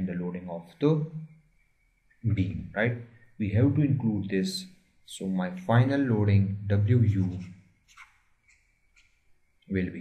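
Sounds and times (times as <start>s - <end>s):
person speaking: 2.2s - 7.6s
stylus scratching on tablet: 7.1s - 9.1s.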